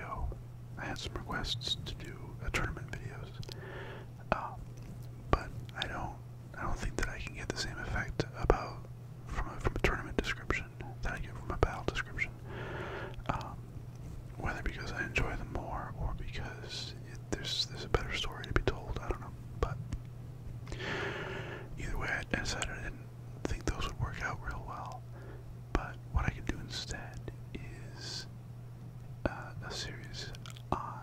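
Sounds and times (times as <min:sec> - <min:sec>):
man whispering: 0:00.0 - 0:03.6, 0:04.2 - 0:04.6, 0:05.3 - 0:13.6, 0:14.4 - 0:19.8, 0:21.6 - 0:25.1, 0:25.7 - 0:28.3, 0:29.2 - 0:31.0
low hum: 0:00.0 - 0:31.0.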